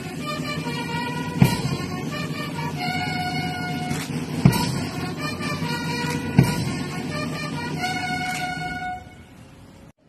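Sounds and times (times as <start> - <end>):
brass music held notes: 0.0 - 9.6
loud thumps: 4.1 - 7.2.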